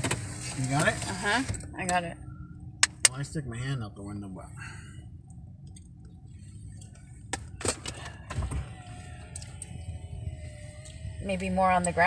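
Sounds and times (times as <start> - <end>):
truck engine and tyres rumbling: 0.0 - 12.0
faint whine: 0.6 - 12.0.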